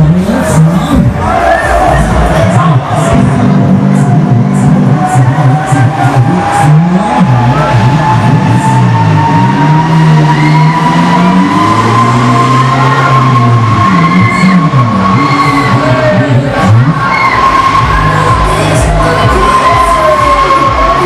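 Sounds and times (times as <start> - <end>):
low shifting tones: 0.0 - 21.0
ride machinery whining: 0.0 - 21.0.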